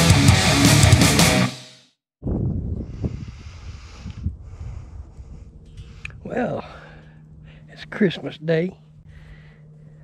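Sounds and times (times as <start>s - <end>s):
wind buffeting microphone: 2.2s - 7.6s.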